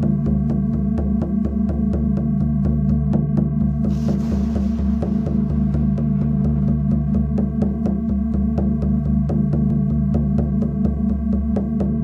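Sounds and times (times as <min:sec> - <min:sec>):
pulsing electronic drone: 0:00.0 - 0:11.8
soft hiss: 0:03.6 - 0:09.4.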